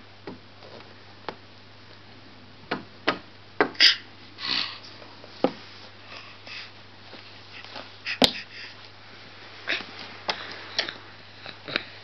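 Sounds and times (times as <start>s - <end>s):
breathy sniff: 4.4s - 5.0s, 5.7s - 8.9s
faint knocks and rustles: 4.9s - 6.0s.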